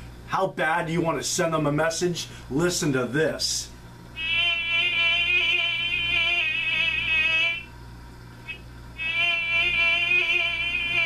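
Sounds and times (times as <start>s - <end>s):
alarm clock buzzing: 4.2s - 7.7s, 9.0s - 11.0s.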